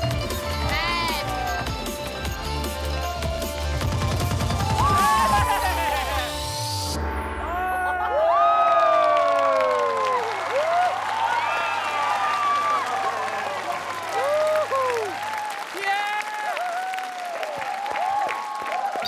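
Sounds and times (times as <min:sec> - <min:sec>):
audience applauding: 0:02.8 - 0:06.4, 0:08.1 - 0:19.0
shrill cheers: 0:04.6 - 0:06.1, 0:07.4 - 0:19.0.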